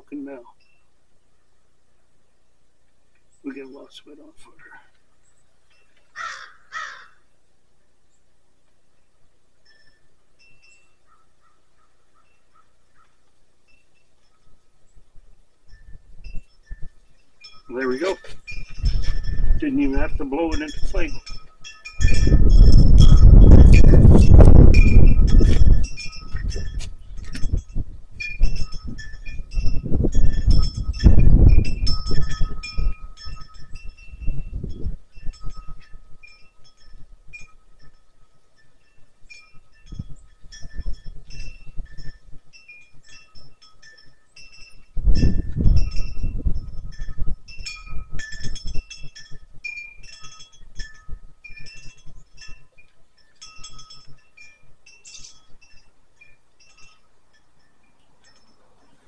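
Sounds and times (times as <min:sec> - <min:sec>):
wind chimes ringing: 0:00.0 - 0:01.2, 0:03.3 - 0:07.5, 0:08.6 - 0:59.0
wind buffeting microphone: 0:14.0 - 0:59.0.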